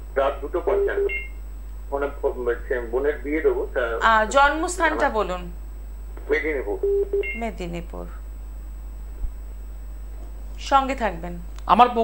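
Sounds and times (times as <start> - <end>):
person speaking over telephone: 0.2 - 1.3, 1.9 - 5.4
two-tone electronic beep: 0.9 - 1.4.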